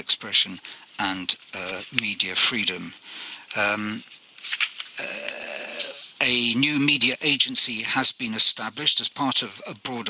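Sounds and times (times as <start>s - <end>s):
man saying uh: 0.0s - 4.0s, 5.0s - 10.0s.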